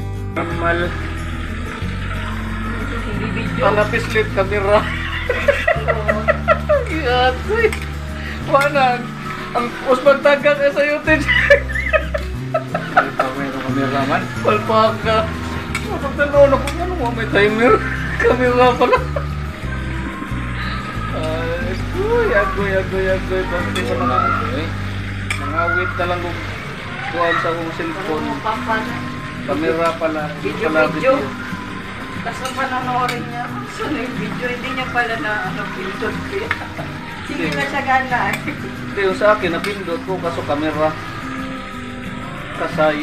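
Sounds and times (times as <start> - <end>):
background music hum: 0.0 - 43.0
food frying: 0.0 - 43.0
people talking: 0.4 - 1.0, 2.1 - 7.8, 12.8 - 19.2, 20.6 - 24.8, 32.2 - 41.0.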